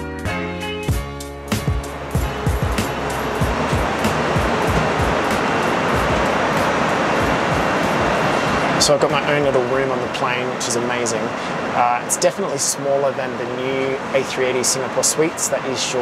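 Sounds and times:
airplane cabin roar in flight: 0:00.9 - 0:16.0
low dull thumps: 0:01.6 - 0:08.6.

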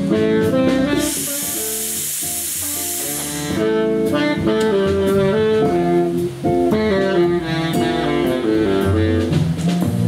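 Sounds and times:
jazz band music: 0:00.0 - 0:10.0
steam hissing: 0:00.9 - 0:03.7.

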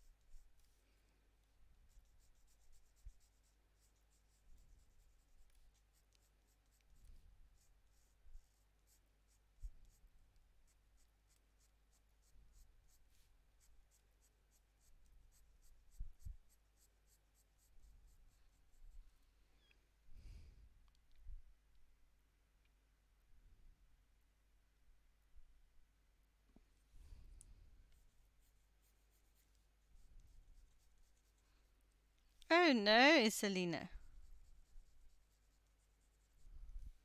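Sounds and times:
colored pencil scratching on paper: 0:00.0 - 0:19.0, 0:28.0 - 0:31.4, 0:34.1 - 0:36.5.

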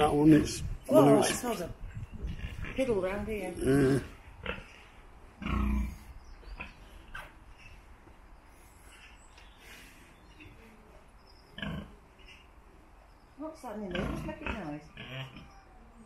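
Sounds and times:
farm animal calling: 0:13.4 - 0:16.0.

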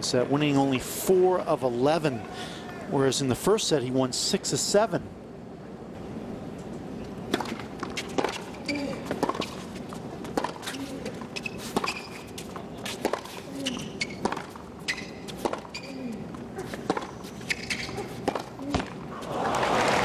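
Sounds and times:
tennis ball bouncing: 0:07.2 - 0:19.0
racquets striking tennis ball: 0:07.2 - 0:19.1
shoe squeaks on court: 0:07.8 - 0:09.6, 0:10.4 - 0:18.9.

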